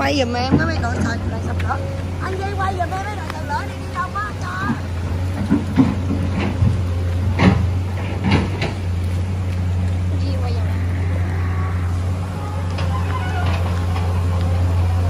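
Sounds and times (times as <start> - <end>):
engine humming steadily: 0.0 - 15.0
short knocks: 4.6 - 9.0.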